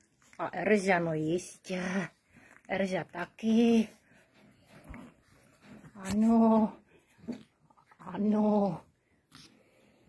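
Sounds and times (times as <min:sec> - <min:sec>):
hand stroking puppies: 0:00.0 - 0:10.0.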